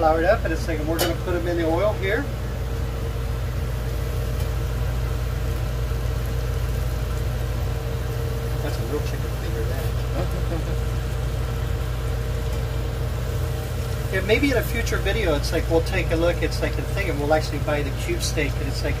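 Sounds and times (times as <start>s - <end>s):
food sizzling in hot oil: 0.0s - 19.0s
low mechanical hum: 0.0s - 19.0s.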